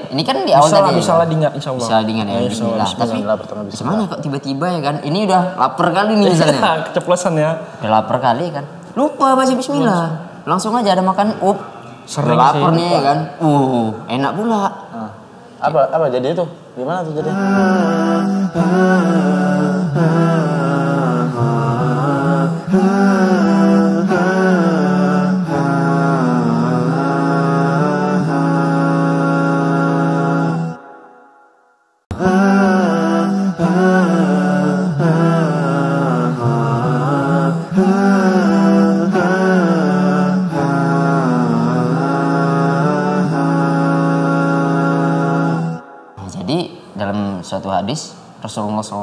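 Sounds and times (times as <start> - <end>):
chanted vocal melody: 0.0 - 4.6, 17.0 - 47.0.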